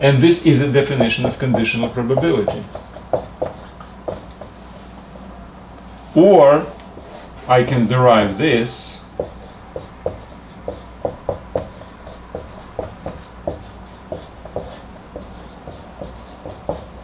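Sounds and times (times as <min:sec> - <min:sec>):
marker pen writing on whiteboard: 0:00.8 - 0:04.6, 0:09.0 - 0:17.0.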